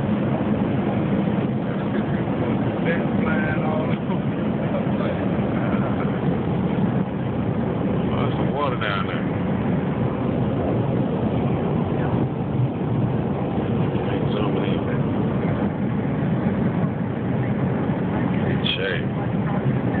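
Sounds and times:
airliner cabin noise: 0.0s - 20.0s
faint voices: 0.9s - 20.0s.

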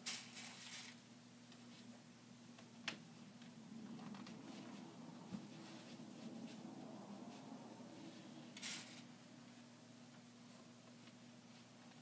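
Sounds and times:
steady low hum: 0.0s - 12.0s
fabric rustling: 3.8s - 9.0s.

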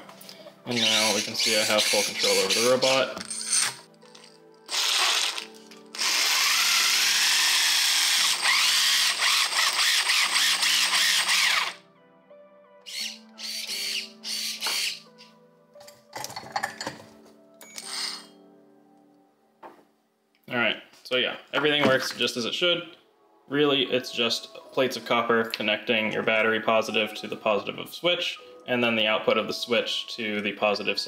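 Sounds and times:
robot motors whirring: 6.0s - 11.8s.

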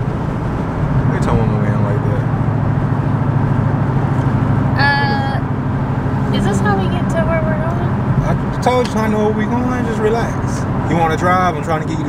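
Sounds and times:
car engine drone in cabin: 0.0s - 12.0s.

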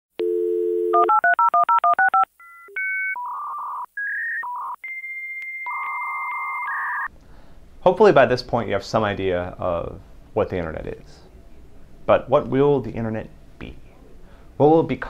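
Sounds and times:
dial tone: 0.2s - 7.1s.

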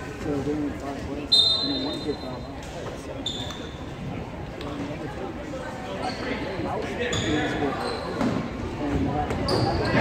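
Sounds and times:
people talking: 0.0s - 10.0s
referee's whistle blasts: 1.3s - 2.2s.

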